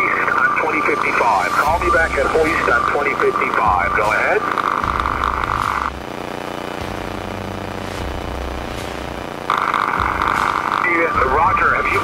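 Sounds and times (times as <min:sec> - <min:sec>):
garbled radio voice: 0:00.0 - 0:04.8, 0:10.8 - 0:12.0
piston aircraft engine drone: 0:00.0 - 0:12.0
radio static: 0:00.0 - 0:12.0.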